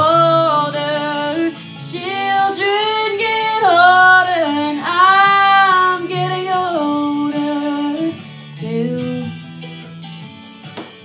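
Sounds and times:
woman singing: 0:00.0 - 0:09.5
guitar accompaniment: 0:00.0 - 0:11.0.

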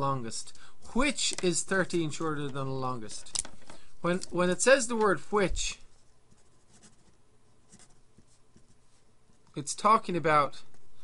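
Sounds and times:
marker scratching on paper: 0:05.8 - 0:09.6.

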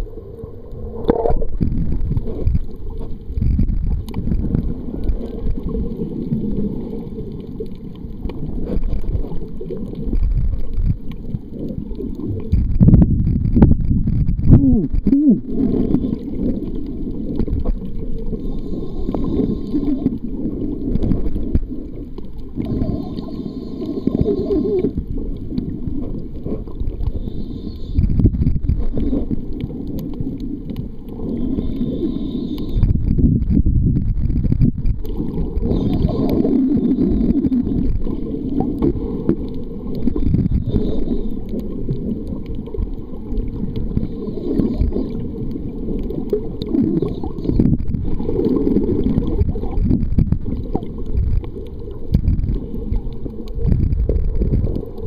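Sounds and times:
underwater rumble and gurgling: 0:00.0 - 0:55.0.

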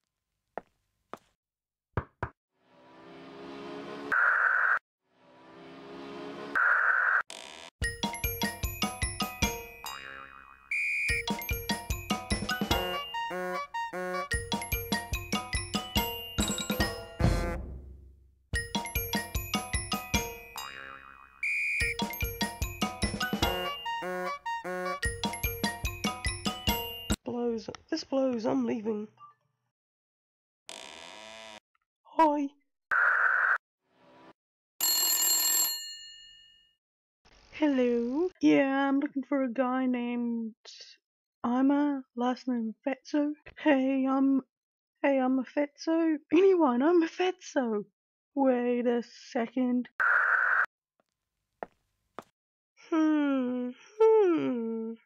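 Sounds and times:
background music: 0:07.8 - 0:27.2
telephone bell ringing: 0:34.8 - 0:36.8.

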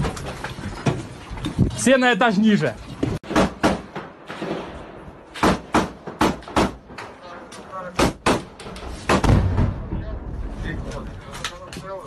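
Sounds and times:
gunshots: 0:03.2 - 0:07.1, 0:07.9 - 0:09.9.

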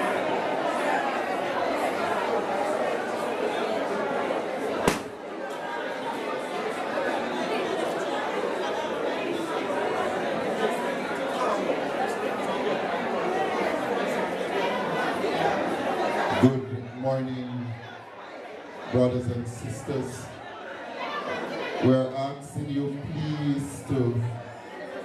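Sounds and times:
crowd chatter in large hall: 0:00.0 - 0:25.0.

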